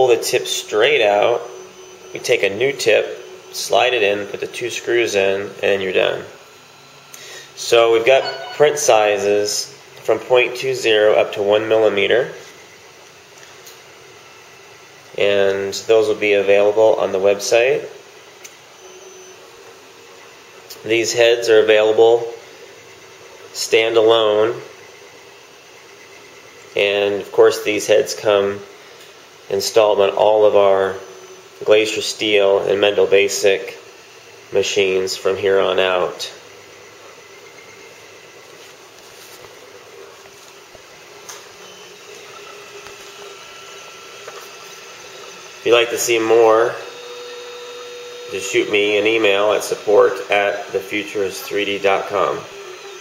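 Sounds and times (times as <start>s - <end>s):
printer mechanical whirr: 0.0s - 53.0s
thin high whine: 0.0s - 53.0s.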